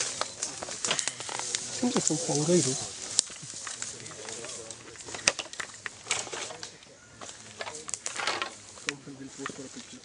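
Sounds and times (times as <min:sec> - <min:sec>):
rustling through leaf litter: 0:00.0 - 0:05.3, 0:06.0 - 0:10.0
people talking quietly: 0:00.0 - 0:10.0.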